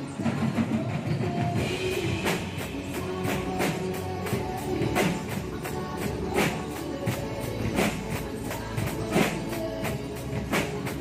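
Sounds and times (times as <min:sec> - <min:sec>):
drum kits playing rock groove: 0:00.0 - 0:11.0.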